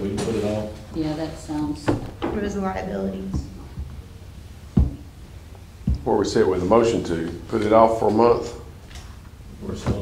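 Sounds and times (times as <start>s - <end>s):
dull low thuds: 4.7s - 5.2s, 5.8s - 6.2s.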